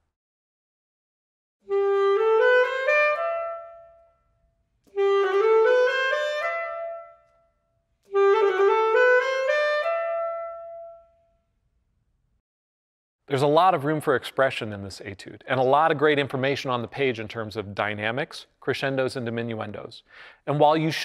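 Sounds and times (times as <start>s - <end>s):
alto saxophone playing: 1.6s - 11.2s.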